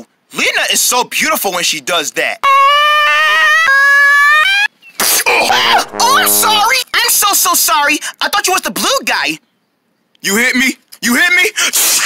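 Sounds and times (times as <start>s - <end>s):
person singing long high note: 5.4s - 6.7s.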